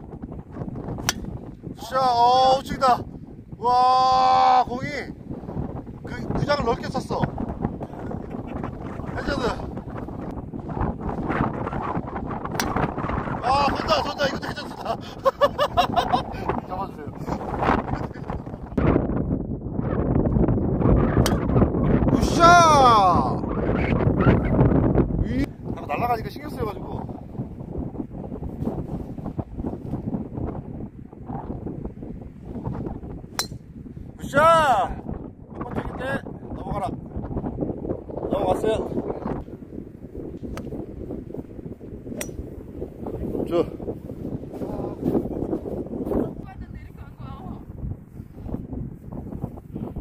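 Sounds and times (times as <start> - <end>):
wind buffeting microphone: 0.0 - 50.0
golf ball struck by club: 0.9 - 1.5, 12.5 - 13.0, 21.2 - 21.5, 33.3 - 33.8, 42.1 - 42.8.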